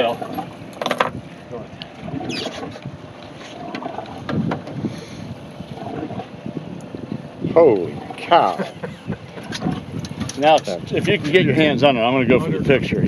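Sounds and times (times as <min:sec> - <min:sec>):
water moving around boat: 0:00.0 - 0:13.0
wind on microphone: 0:00.0 - 0:13.0
low voices: 0:07.4 - 0:12.5.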